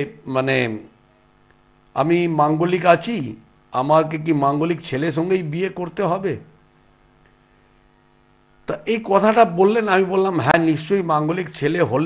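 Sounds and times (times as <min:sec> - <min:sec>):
faint electrical hum: 0:00.0 - 0:12.0
man's voice: 0:02.0 - 0:06.5, 0:08.7 - 0:12.0.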